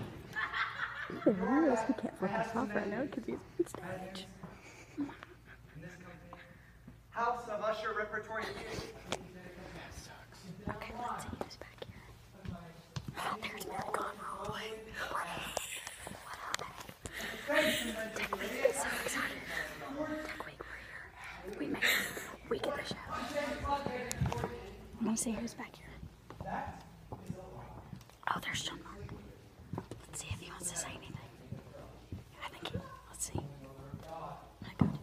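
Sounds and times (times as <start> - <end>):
hushed whispering: 8.4 - 12.3, 13.1 - 23.6, 28.2 - 29.2, 29.9 - 31.6, 32.3 - 33.6
person whispering: 13.2 - 17.1, 28.3 - 29.0, 30.0 - 31.4.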